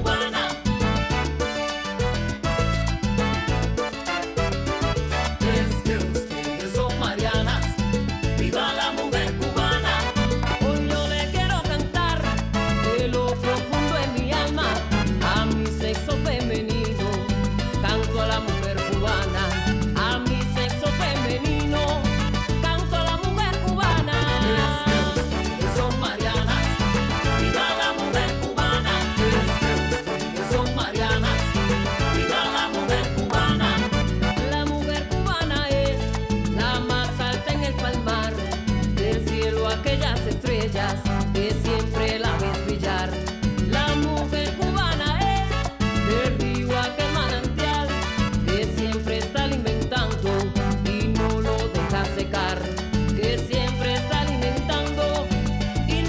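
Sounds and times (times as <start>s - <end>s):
bass guitar line: 0.0s - 56.0s
conga drums: 0.0s - 56.0s
salsa band playing: 0.0s - 56.0s.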